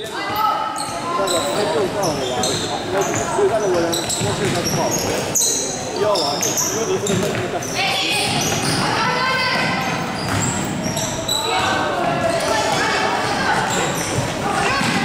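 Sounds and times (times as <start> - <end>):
sneakers squeaking on wooden floor: 0.0 - 15.0.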